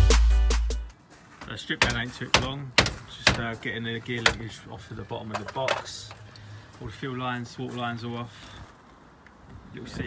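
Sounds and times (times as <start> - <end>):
man talking: 1.4 - 8.5, 9.7 - 10.0.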